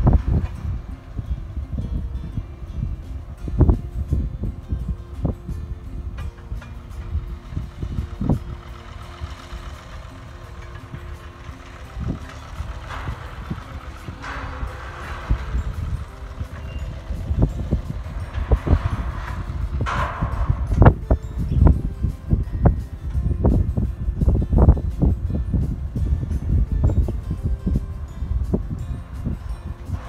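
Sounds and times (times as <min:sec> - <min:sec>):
dragline engine and winch: 0:00.0 - 0:30.0
wind buffeting microphone: 0:00.0 - 0:30.0.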